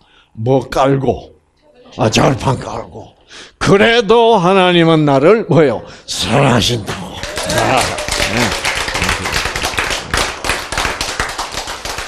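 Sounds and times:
group of people clapping: 6.8 - 12.0.

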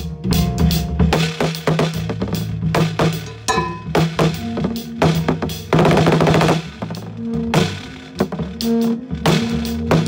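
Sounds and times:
free jazz: 0.0 - 10.0
drum roll and drum hits: 0.3 - 10.0.

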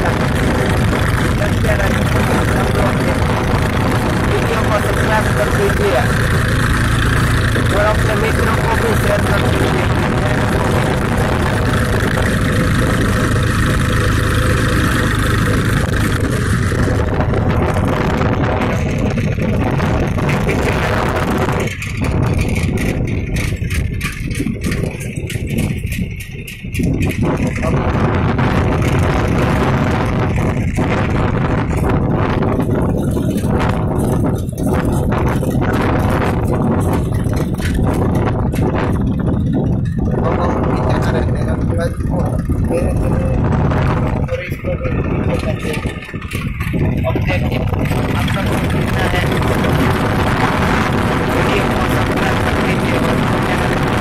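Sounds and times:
tractor engine running: 0.0 - 54.0
sharp clicks and knocks: 18.6 - 29.4, 30.2 - 51.8.

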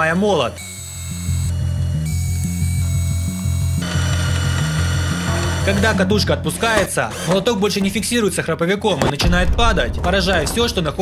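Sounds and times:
electric motor whirring: 0.3 - 6.1
background music with stepping bass: 1.6 - 6.3.

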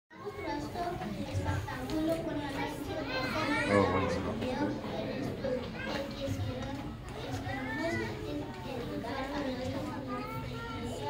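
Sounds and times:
children talking: 0.1 - 11.0.

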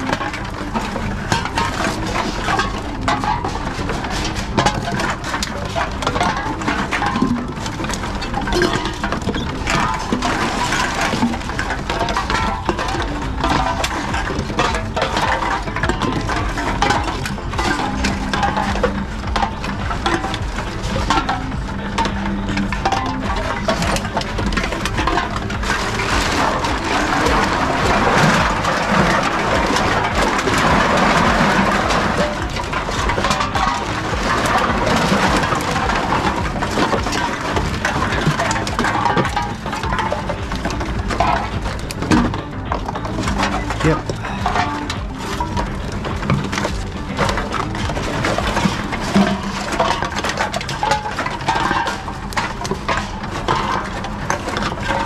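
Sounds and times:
cans and bottles clattering: 0.0 - 55.0.

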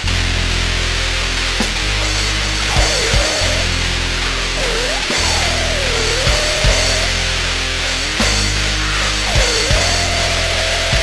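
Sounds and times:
grindcore music: 0.0 - 11.0.

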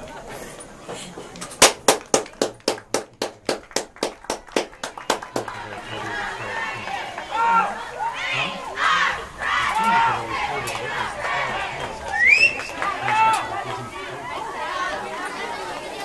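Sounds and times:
rapid hand claps: 1.6 - 5.9
spectators shouting and cheering: 4.0 - 16.0.

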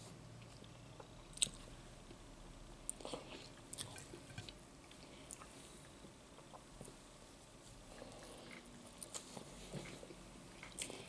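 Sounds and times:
chewing with wet mouth sounds: 2.9 - 7.0, 7.9 - 11.0.

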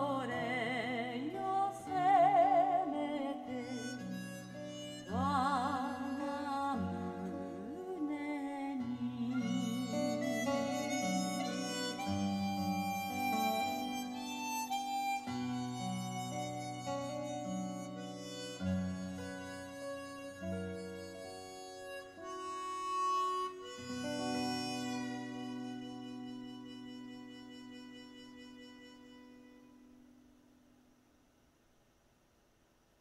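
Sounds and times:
harmonica melody: 0.1 - 30.3.

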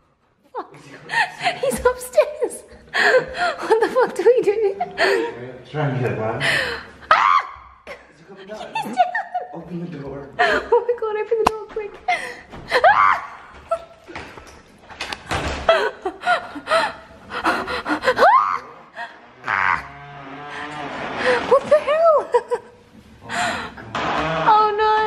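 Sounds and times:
women gasping and squealing: 12.1 - 13.9, 15.7 - 19.8
women laughing nervously: 15.7 - 19.2.

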